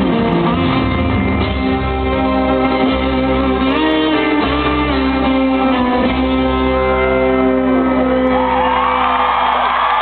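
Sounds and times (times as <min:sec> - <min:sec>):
fiddle with sliding notes: 0:00.0 - 0:08.3
live country band playing: 0:00.0 - 0:10.0.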